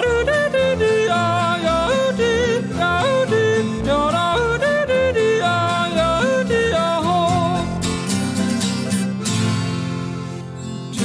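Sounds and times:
person yodeling: 0.0 - 7.9
instrumental backing: 0.0 - 11.0.

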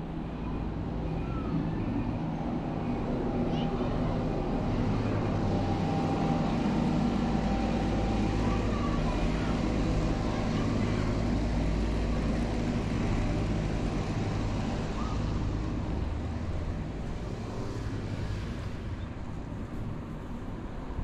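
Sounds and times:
diesel truck engine drone: 0.0 - 21.0.

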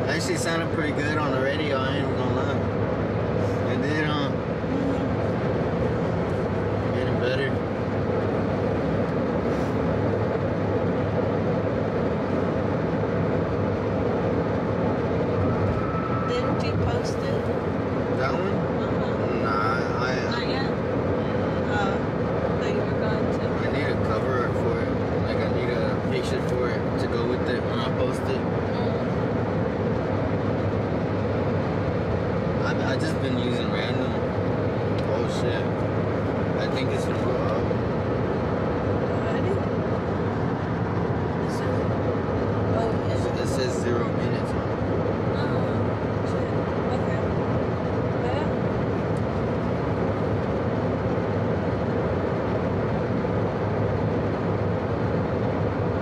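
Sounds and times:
car road and engine noise: 0.0 - 56.0.

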